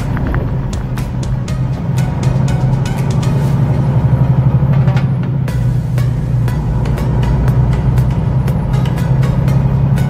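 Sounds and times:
road noise: 0.0s - 10.0s
truck engine drone: 0.0s - 10.0s.

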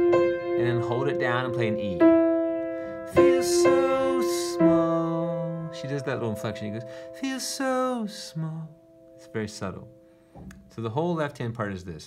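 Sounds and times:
slow piano notes: 0.0s - 11.0s.

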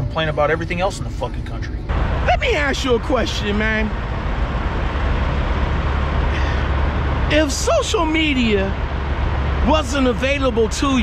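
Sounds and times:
diesel trucks idling: 1.9s - 11.0s.

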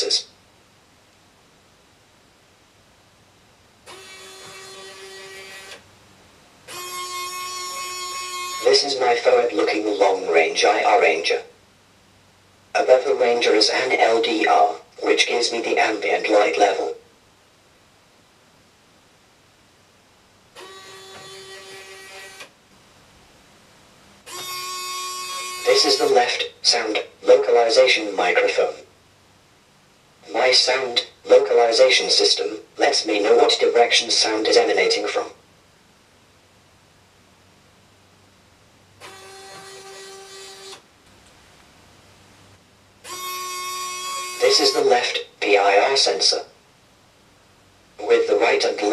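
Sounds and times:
robot arm motors whirring: 39.0s - 40.8s.

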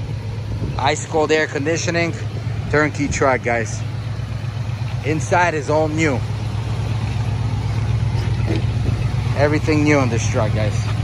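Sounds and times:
pickup truck engine idling: 0.0s - 11.0s.

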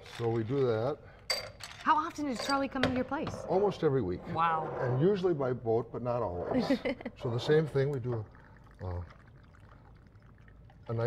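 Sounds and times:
liquid trickling into glass: 7.2s - 11.0s.

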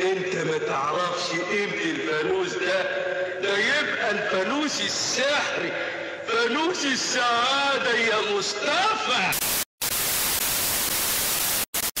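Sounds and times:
television static hiss: 9.3s - 12.0s.

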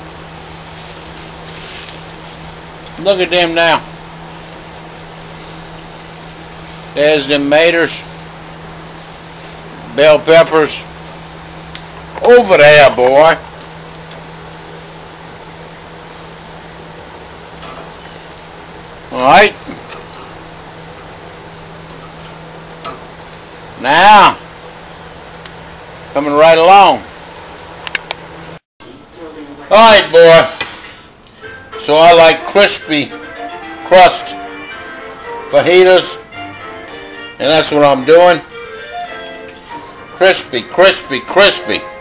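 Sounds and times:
steak sizzling on grill: 0.0s - 28.6s, 31.4s - 42.0s
metal tongs clicking on grate: 17.6s - 18.2s.

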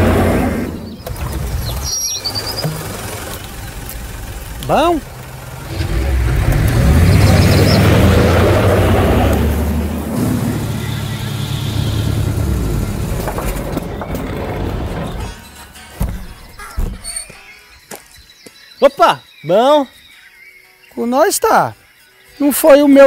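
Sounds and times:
truck engine running: 0.0s - 15.4s
scattered knocks: 2.6s - 3.3s.

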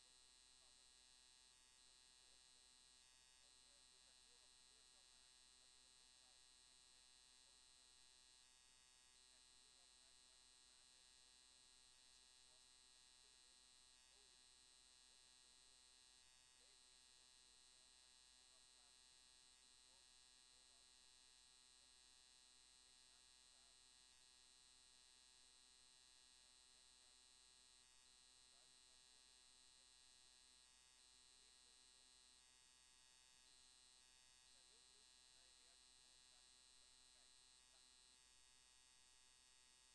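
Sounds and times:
faint steady hum: 0.0s - 39.9s.

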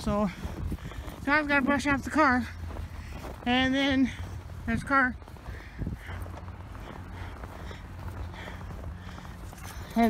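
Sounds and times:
steady low rumble: 0.0s - 9.9s
footsteps in deep snow: 0.0s - 10.0s.

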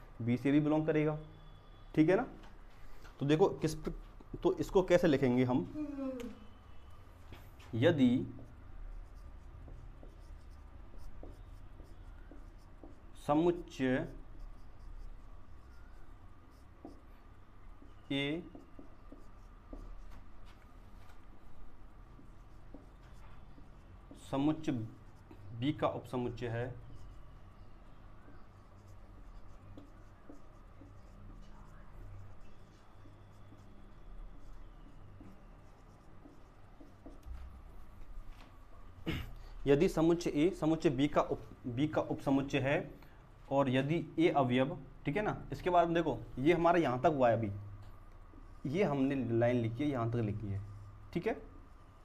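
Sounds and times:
marker pen writing on whiteboard: 0.4s - 5.7s, 6.7s - 38.9s, 39.6s - 43.0s, 43.7s - 52.0s.

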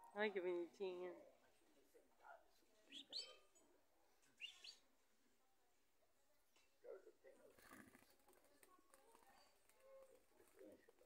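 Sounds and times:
high bird chirps: 2.9s - 3.4s, 4.4s - 4.8s.

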